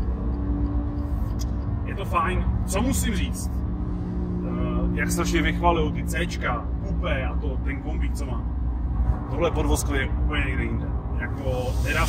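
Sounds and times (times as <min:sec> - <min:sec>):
engine and tyre drone in car: 0:00.0 - 0:12.0.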